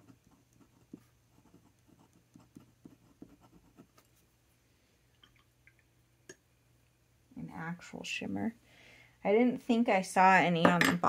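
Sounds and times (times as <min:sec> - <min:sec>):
pen nib scratching on card: 0:00.0 - 0:04.0.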